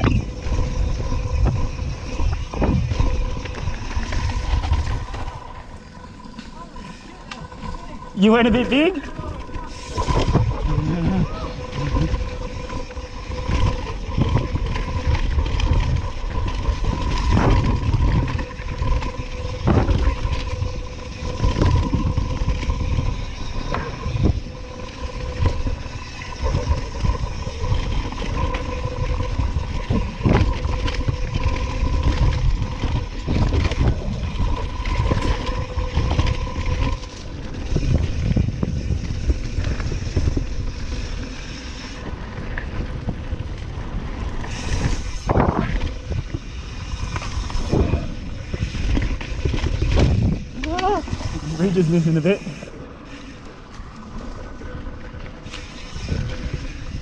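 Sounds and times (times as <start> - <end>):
bike rattling and knocking: 0.0 - 57.0
bike tyres on dirt: 0.0 - 57.0
wind rumbling on microphone: 0.0 - 57.0.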